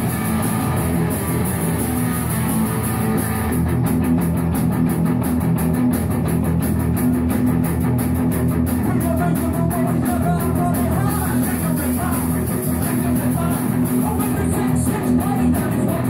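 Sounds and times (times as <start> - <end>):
drum kit beat: 0.0 - 16.0
electric guitar: 0.0 - 16.0.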